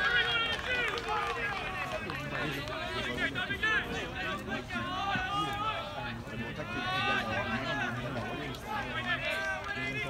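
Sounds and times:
spectators chatting: 0.0s - 10.0s.

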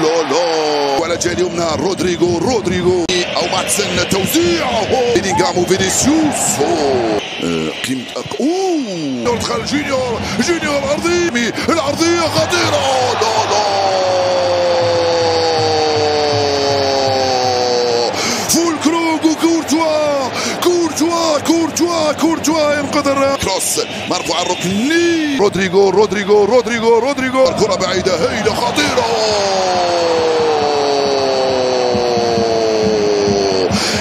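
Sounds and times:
stadium crowd noise: 0.0s - 34.0s
commentator's long shout: 4.4s - 7.2s, 11.3s - 22.9s, 28.2s - 34.0s
crowd groaning ooh: 5.0s - 7.3s, 12.6s - 20.7s, 28.2s - 34.0s.

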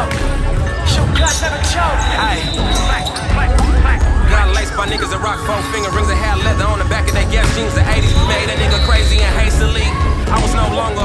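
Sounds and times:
sneakers squeaking on gym floor: 0.0s - 3.7s, 4.6s - 9.9s
hip-hop music with heavy bass: 0.0s - 11.0s.

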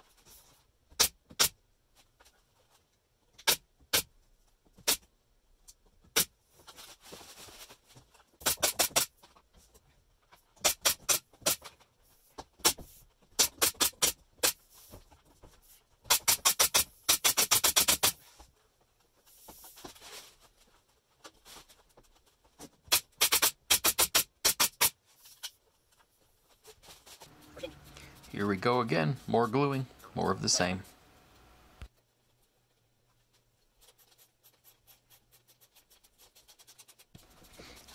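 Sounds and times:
nailer firing sharp clicks: 8.4s - 9.1s, 10.6s - 11.6s, 13.4s - 14.6s, 16.1s - 18.1s, 22.9s - 25.0s.

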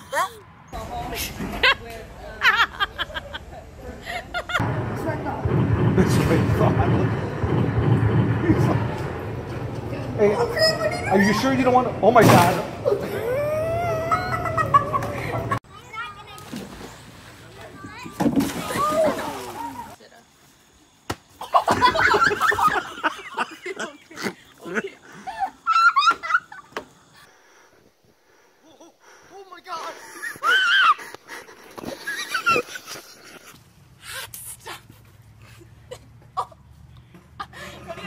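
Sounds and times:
person squealing: 12.9s - 14.7s
person wailing cry: 12.9s - 14.9s.

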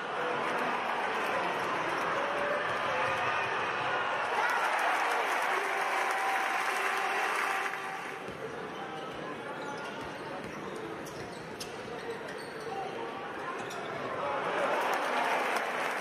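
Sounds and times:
crowd noise: 0.0s - 16.0s
sneakers squeaking on hardwood: 9.1s - 12.8s.

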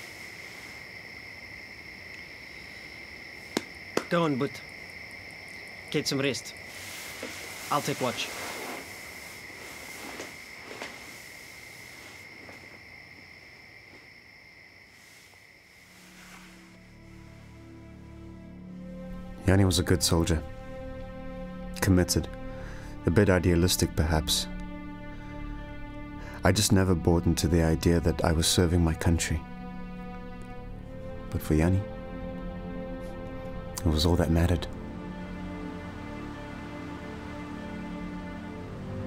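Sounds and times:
crickets trilling: 0.0s - 39.0s
low music drone: 15.9s - 39.0s.

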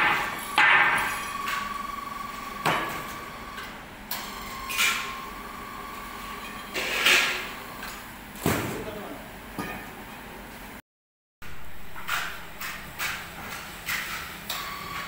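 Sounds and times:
heavy metal clanks and knocks: 0.0s - 1.1s.

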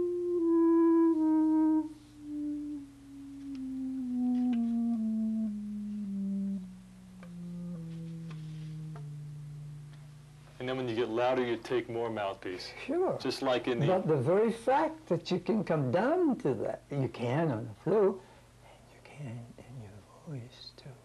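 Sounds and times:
clarinet playing a descending scale: 0.0s - 10.2s.

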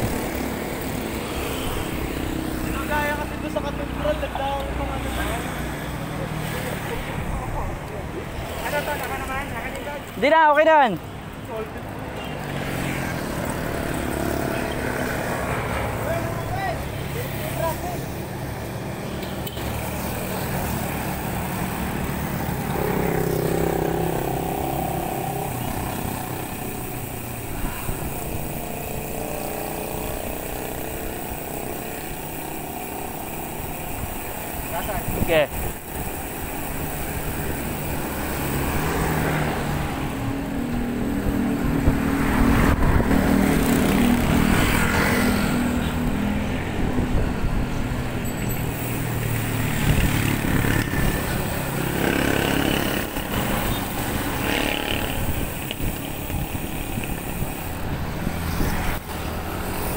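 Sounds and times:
bicycle road rumble: 0.0s - 59.9s
road traffic engines: 0.0s - 59.9s
wind: 0.0s - 59.9s.

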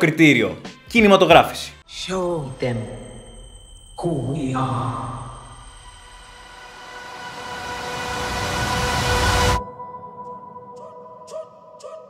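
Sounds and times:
faint held tone: 1.8s - 10.5s
noisy swell over held chord: 1.9s - 10.6s.

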